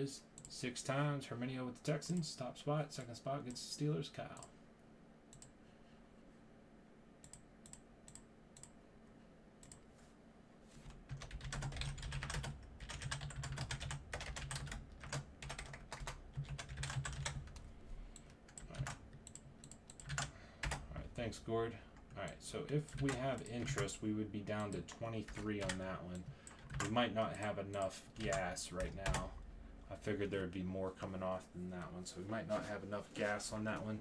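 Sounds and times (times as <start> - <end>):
typing on keyboard: 10.9 - 17.6, 18.2 - 20.8, 22.8 - 23.9, 24.6 - 25.8, 26.4 - 27.5.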